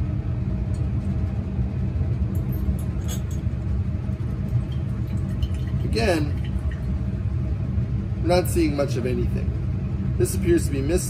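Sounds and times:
ventilation rumble: 0:00.0 - 0:11.0
glassware clinking: 0:02.4 - 0:03.5.

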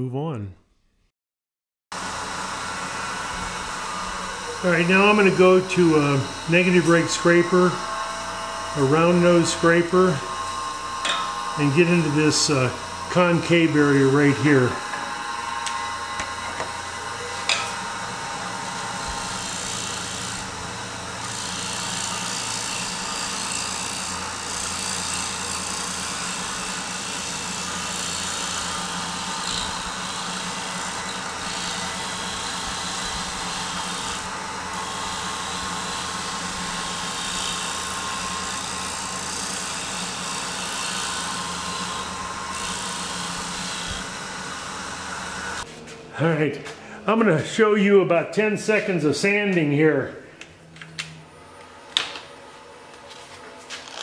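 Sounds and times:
wood lathe humming: 0:01.9 - 0:45.7
scraper cutting wood on lathe: 0:02.0 - 0:45.7.

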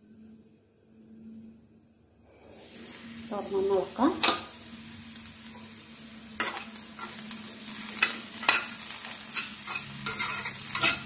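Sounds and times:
muffled frying in lidded pan: 0:02.3 - 0:11.0.

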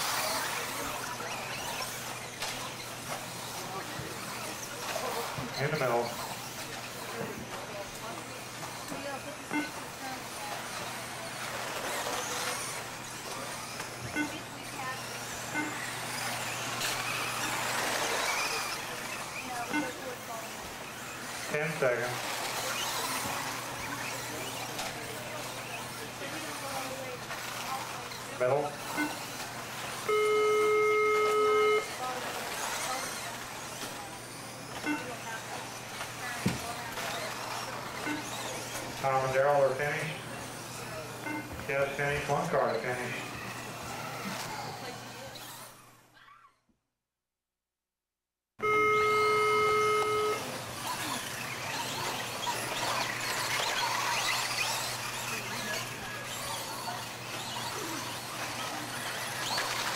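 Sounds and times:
rc car motors whining: 0:00.0 - 0:46.6, 0:48.6 - 0:59.9
loud buzzer tone: 0:09.4 - 0:10.0, 0:14.0 - 0:14.6, 0:15.4 - 0:17.5, 0:19.4 - 0:20.2, 0:28.8 - 0:29.3, 0:30.0 - 0:32.0, 0:34.8 - 0:35.2, 0:38.0 - 0:38.4, 0:41.2 - 0:41.6, 0:48.6 - 0:50.6.

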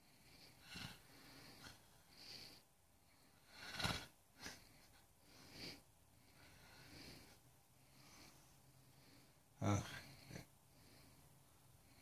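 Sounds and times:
man breathing faintly: 0:00.0 - 0:12.0
snort-like burst of breath: 0:00.4 - 0:02.6, 0:03.3 - 0:07.4.

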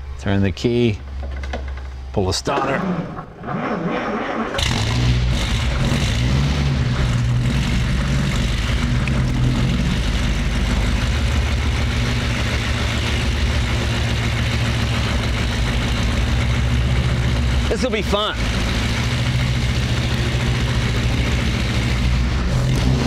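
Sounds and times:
car engine starting and revving: 0:02.5 - 0:23.0.

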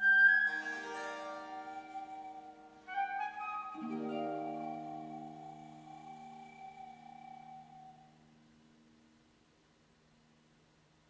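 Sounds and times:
high woodwind note: 0:00.0 - 0:08.4.

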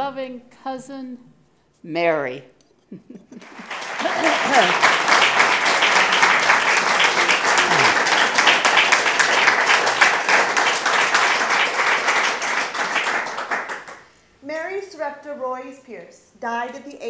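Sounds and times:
audience applauding: 0:03.4 - 0:14.0.

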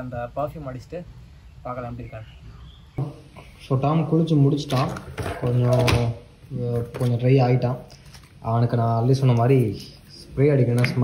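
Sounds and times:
man speaking: 0:03.0 - 0:11.0.

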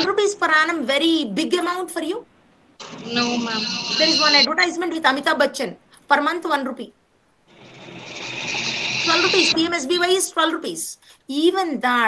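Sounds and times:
steady hissing noise: 0:00.0 - 0:11.9.

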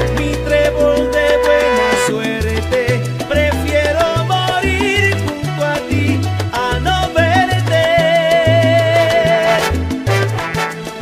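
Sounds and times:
salsa music: 0:00.0 - 0:11.0.

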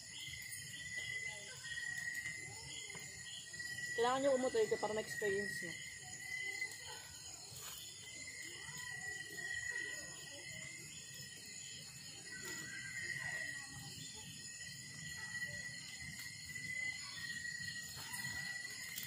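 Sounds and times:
night insects trilling: 0:00.0 - 0:19.0
wood fire crackling: 0:11.8 - 0:19.0.

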